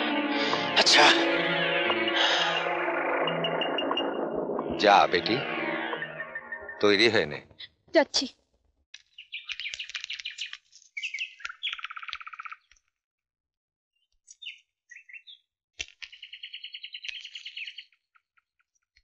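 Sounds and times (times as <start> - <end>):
bird-like chirping trills: 5.9 - 7.1, 9.0 - 12.8, 14.3 - 15.5, 16.1 - 18.0.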